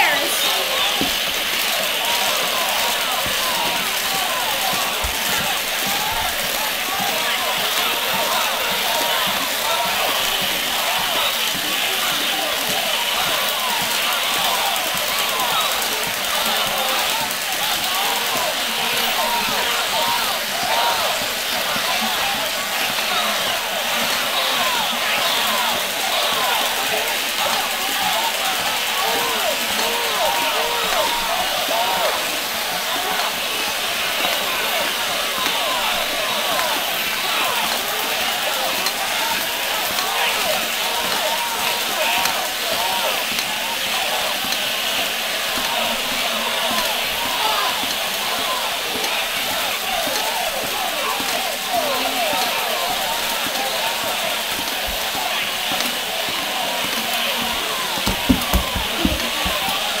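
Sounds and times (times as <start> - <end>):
voices chattering: 0.0 - 60.0
thumps: 58.0 - 59.9.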